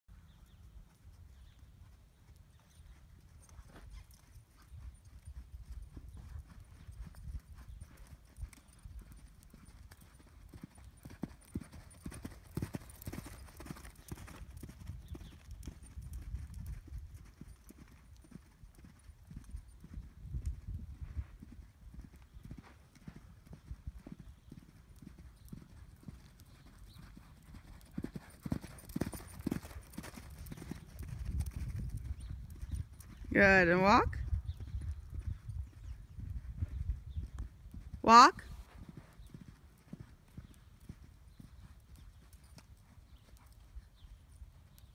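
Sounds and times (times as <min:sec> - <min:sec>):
horse hoofbeats on sand: 0:00.4 - 0:33.3.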